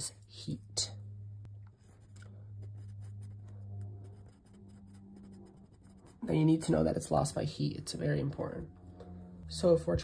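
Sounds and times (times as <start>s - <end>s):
low steady hum: 0.0s - 10.0s
pen scratching on paper: 1.8s - 6.6s.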